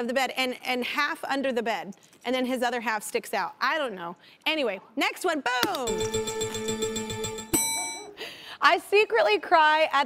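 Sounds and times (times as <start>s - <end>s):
bright bell ding: 5.9s - 8.2s.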